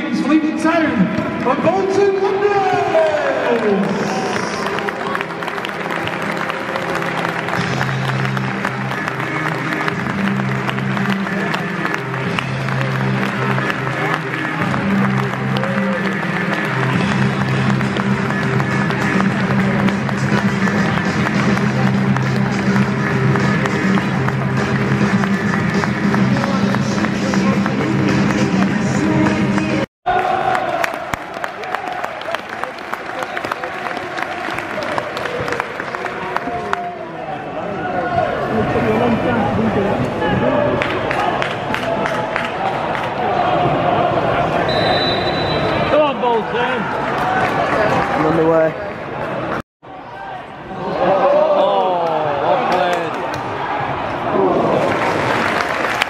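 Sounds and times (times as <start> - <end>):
crowd applause: 2.8 - 37.4, 38.2 - 48.8, 50.9 - 56.0
music over loudspeakers: 3.6 - 29.9.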